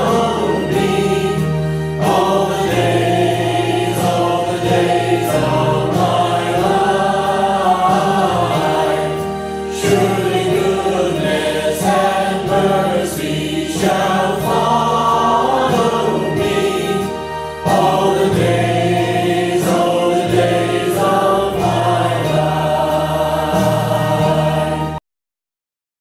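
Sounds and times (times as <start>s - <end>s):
choir singing sustained notes: 0.0s - 25.0s
steady bass accompaniment: 0.0s - 25.0s.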